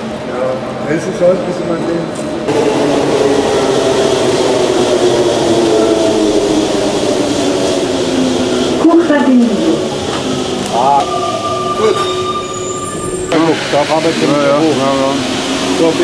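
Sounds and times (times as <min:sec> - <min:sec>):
train rumbling with motor whine: 0:00.0 - 0:16.0.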